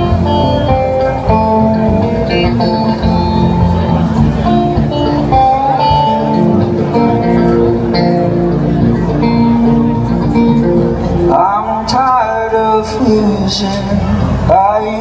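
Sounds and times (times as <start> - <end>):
electric guitar picked notes: 0.0 - 15.0.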